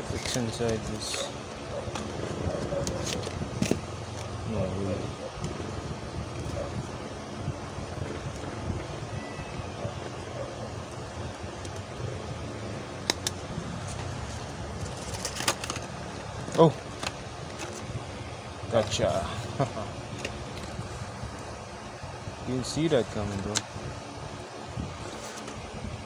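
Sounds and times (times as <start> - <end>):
fan hum: 0.0 - 26.0
sharp plastic crackles: 13.0 - 17.9
plastic package clicks and rustles: 14.8 - 17.8.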